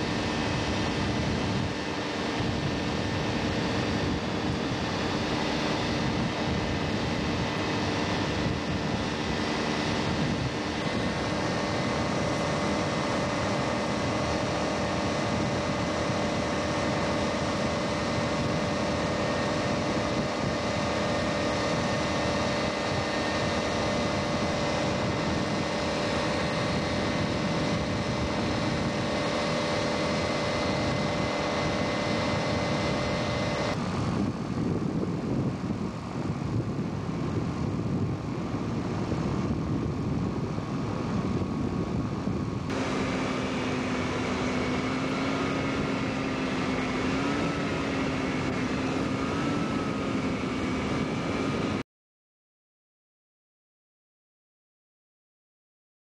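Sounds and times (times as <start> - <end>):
ultralight aircraft engine droning: 0.0 - 51.8.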